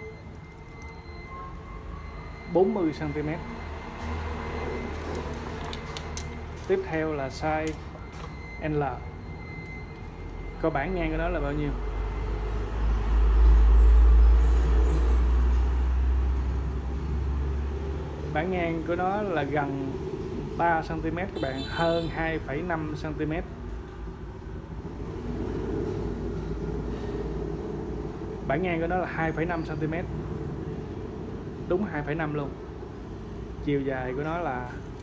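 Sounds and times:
road traffic rumble: 0:00.0 - 0:35.0.

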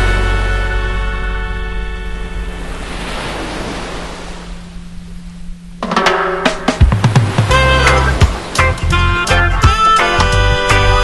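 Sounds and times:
steady low hum: 0:00.0 - 0:08.7
surf washing up a beach: 0:02.5 - 0:05.0, 0:06.8 - 0:08.9
music track: 0:05.8 - 0:11.0.

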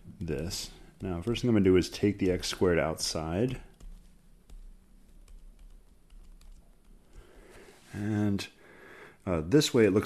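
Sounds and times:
stylus tapping on tablet screen: 0:03.5 - 0:07.4.

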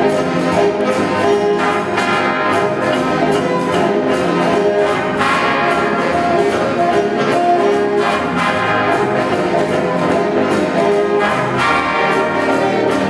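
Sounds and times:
jazz band playing: 0:00.0 - 0:13.0
trumpets and trombones chords: 0:00.0 - 0:13.0.

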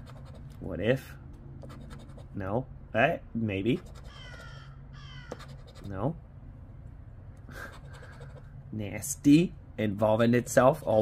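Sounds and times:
bird calling harshly: 0:03.9 - 0:05.6.

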